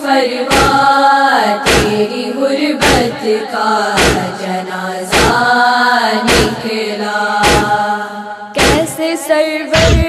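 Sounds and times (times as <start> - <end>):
women chanting a lament: 0.0 - 10.0
chest-beating thuds: 0.5 - 0.9, 1.6 - 2.1, 2.8 - 3.2, 4.0 - 4.4, 5.1 - 5.5, 6.2 - 6.6, 7.4 - 7.8, 8.6 - 9.0, 9.7 - 10.0.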